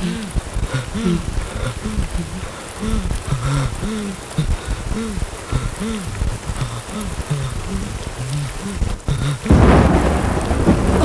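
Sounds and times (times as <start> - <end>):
heavy rain pouring: 0.0 - 11.0
thunderclap rumbling: 0.0 - 11.0.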